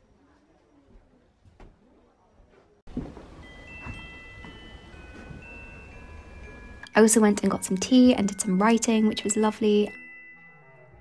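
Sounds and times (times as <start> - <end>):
bell-like chime notes: 3.4 - 11.0.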